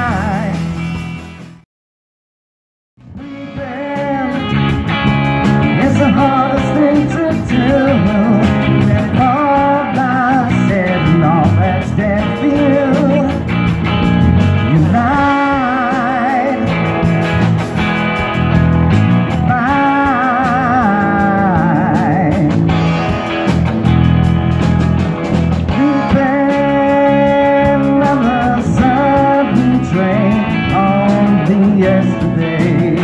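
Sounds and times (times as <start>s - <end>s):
person singing: 0.0s - 0.8s, 3.1s - 13.5s, 14.6s - 16.9s, 19.4s - 22.8s, 25.7s - 33.0s
bass guitar: 0.0s - 1.6s, 3.0s - 33.0s
drums: 0.0s - 1.6s, 3.0s - 33.0s
electric guitar: 0.0s - 1.6s, 3.0s - 33.0s.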